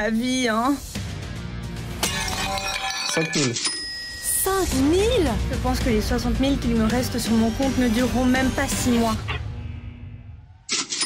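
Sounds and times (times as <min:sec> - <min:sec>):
background music: 0:00.0 - 0:10.7
glass shattering crash: 0:02.0 - 0:03.8.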